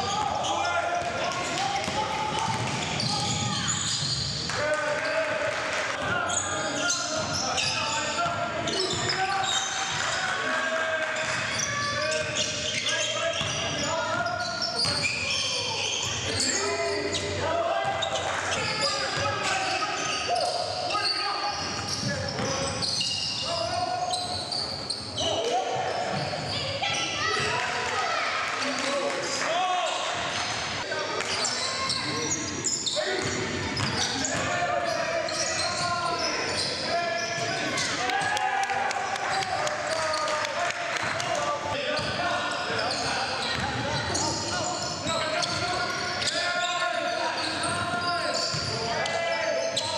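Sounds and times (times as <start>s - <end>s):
players calling out: 0.0s - 49.9s.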